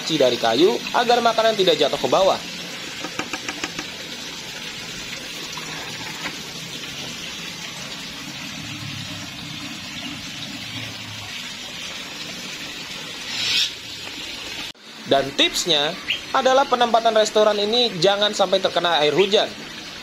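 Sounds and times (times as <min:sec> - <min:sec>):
running water rushing: 0:00.0 - 0:20.0.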